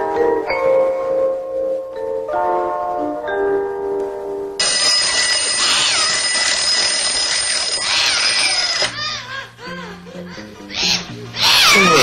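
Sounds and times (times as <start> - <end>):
alarm clock bell ringing: 4.6 - 9.0.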